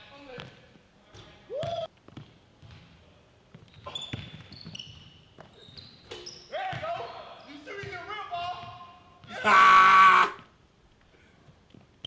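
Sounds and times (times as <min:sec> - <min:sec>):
basketball bouncing on court: 0:01.6 - 0:05.8.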